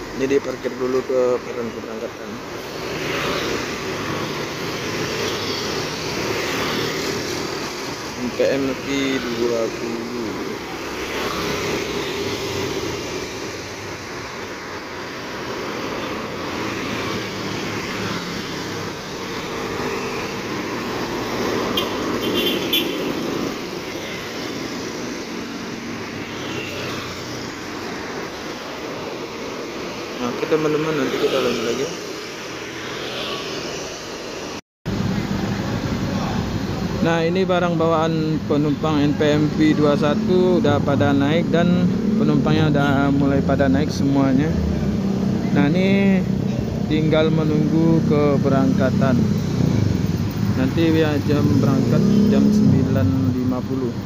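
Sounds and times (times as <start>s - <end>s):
cars passing: 0.0s - 54.0s
motorcycles passing: 0.0s - 54.0s
road traffic hum and tyre noise: 0.0s - 54.0s.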